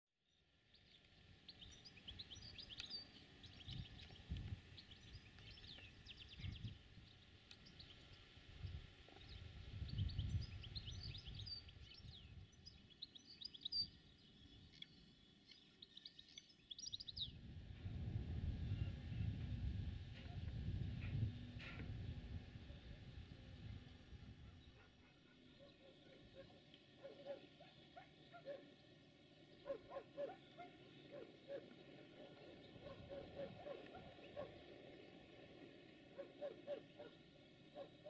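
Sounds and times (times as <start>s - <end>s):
small birds chirping: 0.3s - 17.4s, 22.6s - 38.0s
wind gusts on microphone: 3.5s - 7.2s, 8.4s - 12.8s, 17.0s - 24.7s.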